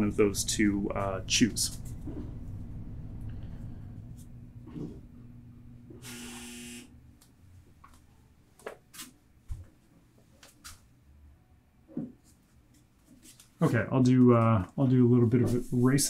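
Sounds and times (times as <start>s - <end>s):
faint steady hum: 0.0s - 8.6s
short buzz: 6.0s - 7.0s.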